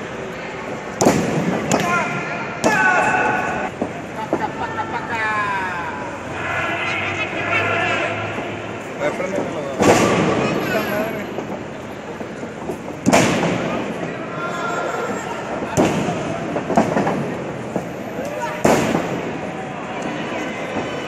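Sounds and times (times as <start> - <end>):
crowd chatter and shouts: 0.0 - 21.0.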